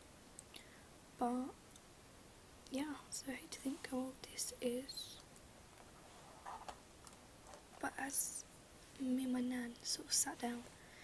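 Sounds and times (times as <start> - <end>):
woman speaking softly: 1.2 - 1.6, 2.7 - 5.2, 7.8 - 10.7.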